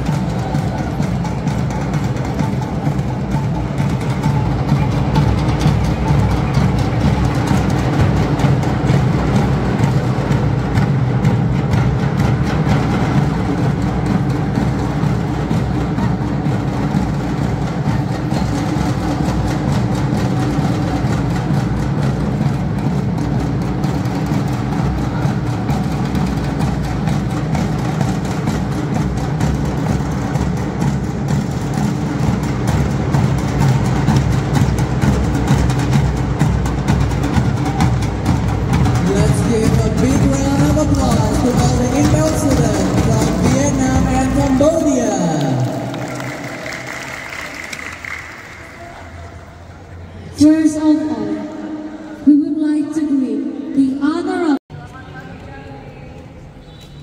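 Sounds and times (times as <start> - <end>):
fast drumming ensemble: 0.0 - 52.0.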